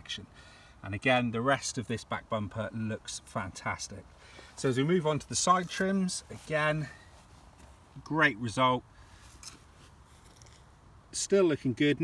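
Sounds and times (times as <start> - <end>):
faint steady hiss: 0.0 - 12.0
slight rustle of phone: 9.1 - 10.8.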